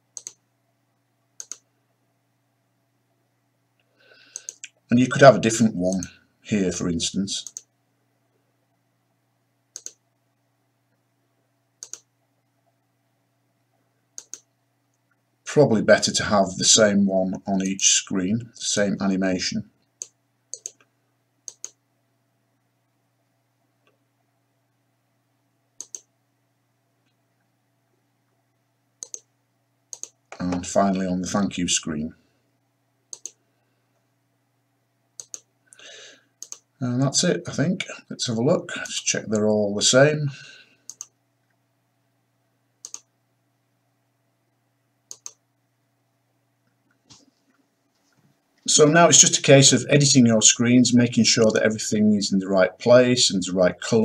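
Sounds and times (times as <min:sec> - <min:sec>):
faint steady hum: 0:00.0 - 0:54.0
computer mouse double clicks: 0:01.4 - 0:01.6, 0:09.8 - 0:10.0, 0:14.2 - 0:14.5, 0:25.8 - 0:26.1, 0:45.1 - 0:45.4
computer mouse button clicks: 0:09.8 - 0:10.0.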